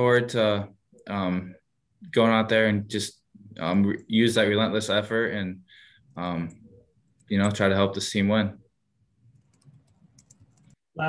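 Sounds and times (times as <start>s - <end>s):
keyboard typing clicks: 9.4s - 10.8s.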